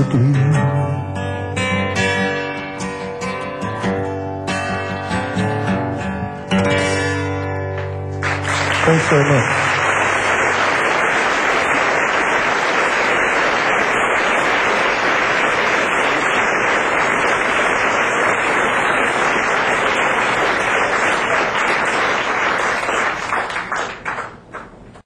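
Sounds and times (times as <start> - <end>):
audience applauding: 8.2 - 25.0.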